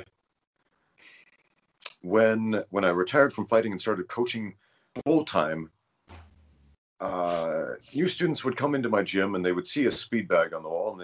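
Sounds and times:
mouth click: 0:01.8 - 0:02.0
man speaking: 0:01.8 - 0:05.7, 0:07.0 - 0:11.0.

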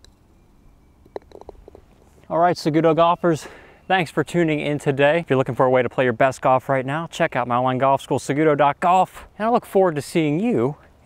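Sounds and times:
golf ball small knocks: 0:01.0 - 0:02.0
putter striking golf ball: 0:01.0 - 0:02.1.

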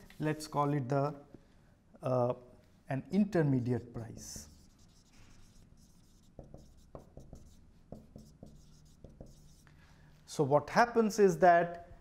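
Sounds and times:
marker pen writing on whiteboard: 0:03.6 - 0:09.8.

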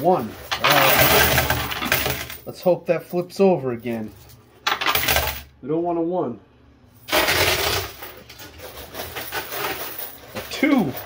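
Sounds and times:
coins clattering in coin pusher: 0:00.0 - 0:02.5, 0:04.7 - 0:05.5, 0:07.0 - 0:11.0.

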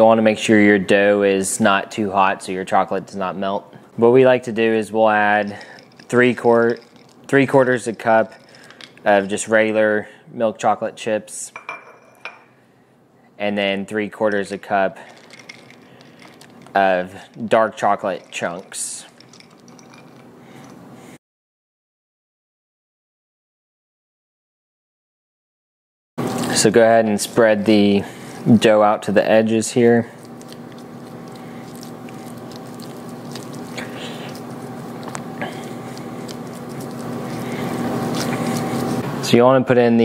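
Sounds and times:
faint steady hum: 0:26.2 - 0:40.0
spatula scraping skillet: 0:30.3 - 0:39.1.

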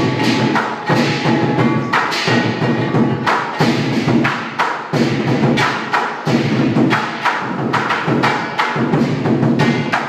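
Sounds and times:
big drum beating: 0:00.0 - 0:10.0
cymbals crashing: 0:00.0 - 0:10.0.

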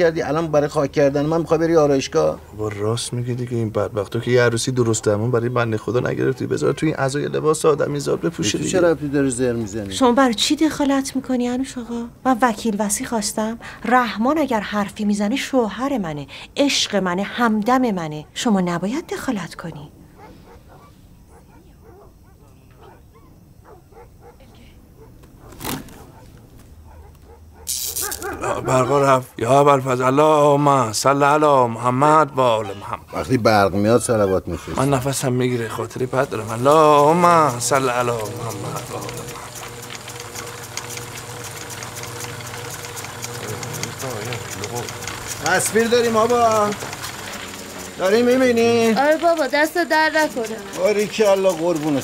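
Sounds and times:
small electric motor humming: 0:03.5 - 0:10.9, 0:34.7 - 0:52.0
dogs yipping and barking: 0:04.7 - 0:05.4, 0:18.0 - 0:29.3, 0:38.7 - 0:42.6
rapid crackle of ticks: 0:34.9 - 0:52.0.

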